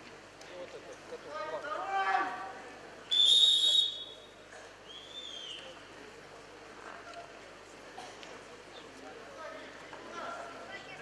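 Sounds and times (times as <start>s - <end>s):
referee's whistle blast: 3.1s - 4.3s.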